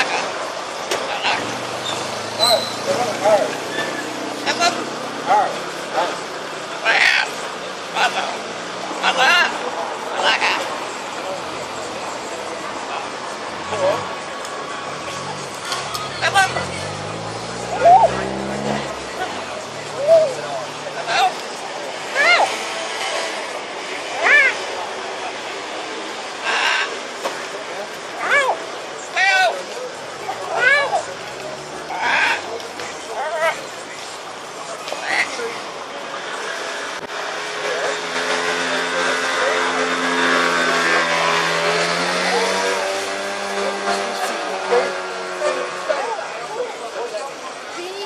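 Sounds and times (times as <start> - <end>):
vehicle engine hum: 0.0 - 48.0.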